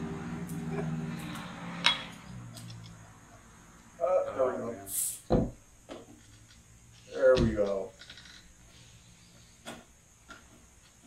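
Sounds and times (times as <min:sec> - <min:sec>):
glass clinking: 0:01.8 - 0:02.2.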